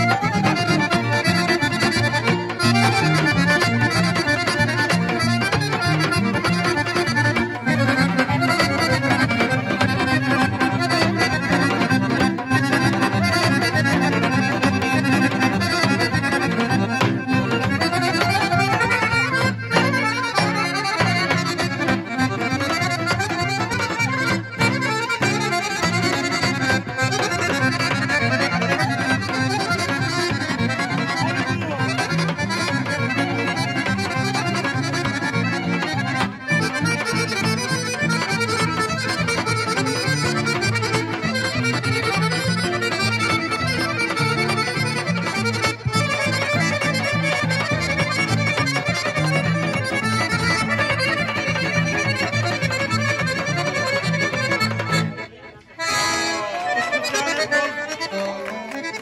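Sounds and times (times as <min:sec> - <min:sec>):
hand drum: 0:00.0 - 0:55.3
acoustic guitar: 0:00.0 - 0:55.4
accordion: 0:00.0 - 0:59.0
clarinet: 0:00.0 - 0:59.0.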